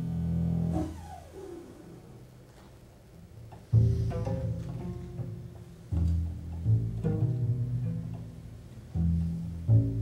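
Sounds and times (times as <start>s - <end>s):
double bass low note: 0.0s - 2.3s, 3.5s - 10.0s.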